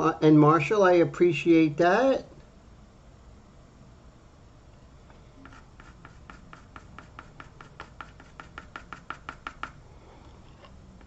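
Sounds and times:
pencil strokes on paper: 0:05.4 - 0:09.8.

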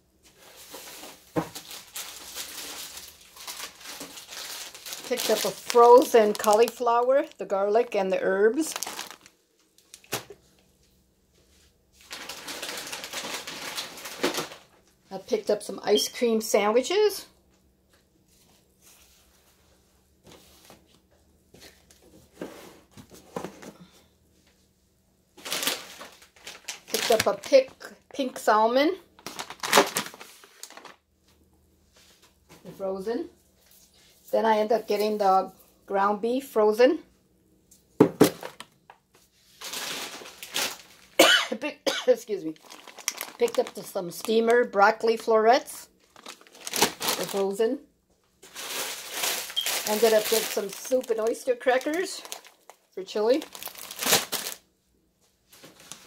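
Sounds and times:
packaging rustling and crinkling: 0:00.3 - 0:07.5, 0:08.5 - 0:10.4, 0:12.0 - 0:14.8, 0:25.4 - 0:27.8, 0:29.2 - 0:31.0, 0:39.4 - 0:41.2, 0:42.4 - 0:45.3, 0:46.0 - 0:47.6, 0:48.4 - 0:54.6, 0:55.5 - 0:56.0
woman coughing: 0:41.2 - 0:42.2.

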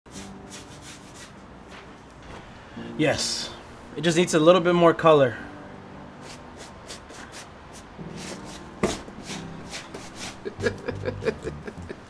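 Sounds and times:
paintbrush scrubbing on canvas: 0:00.1 - 0:01.4, 0:06.2 - 0:10.6.

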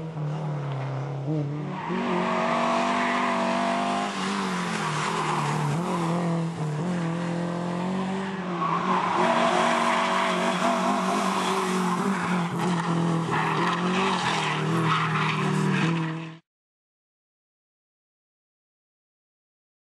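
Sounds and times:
rally car engine revving: 0:00.0 - 0:16.4.

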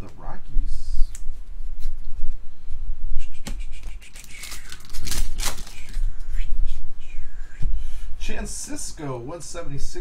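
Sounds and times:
trading cards rustling: 0:03.9 - 0:06.1.

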